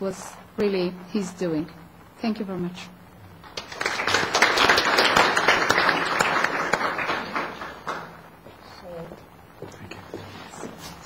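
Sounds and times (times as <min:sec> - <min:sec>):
audience applauding: 0:03.4 - 0:08.3.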